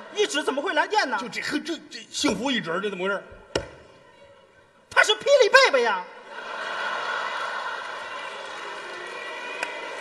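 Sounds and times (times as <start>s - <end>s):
audience laughing: 6.1s - 8.4s.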